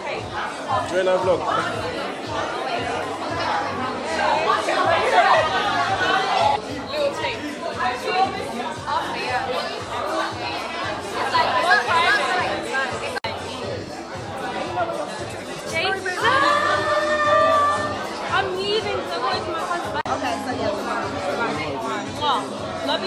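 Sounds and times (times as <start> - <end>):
background music: 0.0 - 23.0
people talking over one another: 0.0 - 23.0.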